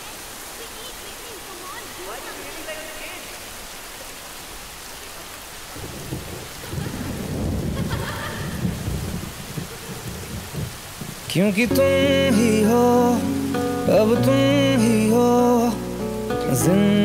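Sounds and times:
heavy rain hissing: 0.0s - 17.0s
low rumble of thunder: 5.8s - 11.3s.

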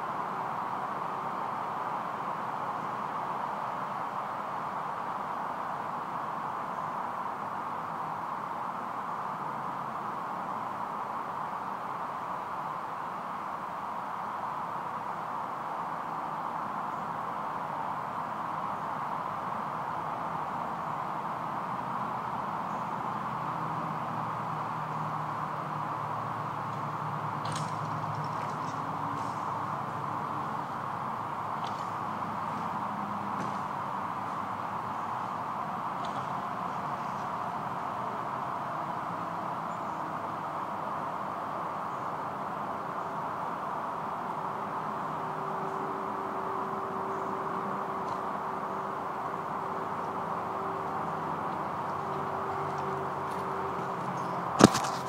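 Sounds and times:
steady background noise: 0.0s - 55.0s.

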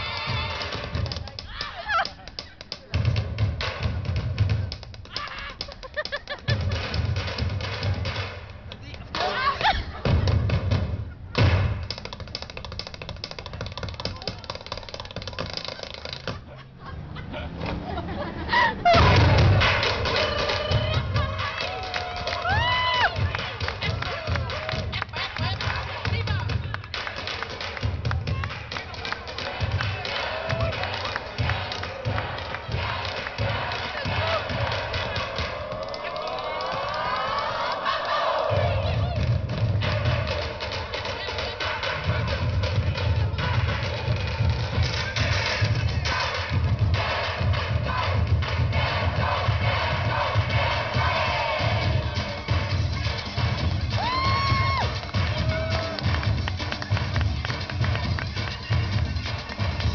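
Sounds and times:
crowd shouting and cheering: 0.0s - 10.5s, 16.3s - 59.9s
heavy low thuds: 18.8s - 20.1s
distorted voices over music: 28.2s - 54.0s.

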